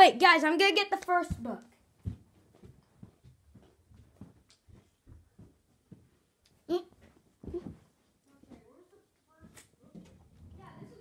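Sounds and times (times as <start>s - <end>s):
low thumps of person moving: 1.1s - 8.7s.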